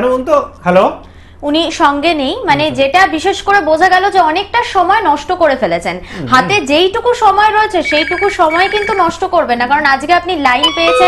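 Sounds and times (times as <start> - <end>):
person speaking: 2.4 - 3.0, 6.1 - 6.9
telephone ringing: 7.8 - 9.3, 10.6 - 11.0.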